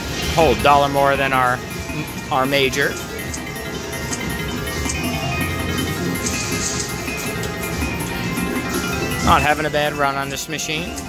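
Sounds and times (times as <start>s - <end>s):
slot machine win music: 0.0s - 11.0s.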